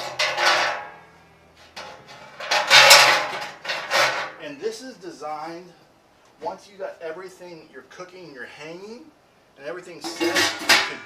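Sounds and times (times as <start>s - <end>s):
metal rods scraping and clanking: 0.0s - 1.0s, 1.6s - 4.4s, 10.0s - 11.0s.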